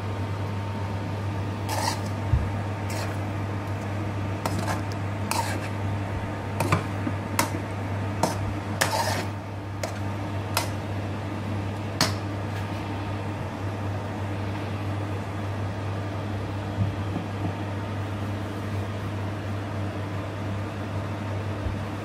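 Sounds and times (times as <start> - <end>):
steady low hum: 0.0 - 22.0
metal spoon scraping frying pan: 1.7 - 2.2, 2.9 - 3.2, 4.4 - 5.8, 8.2 - 10.0.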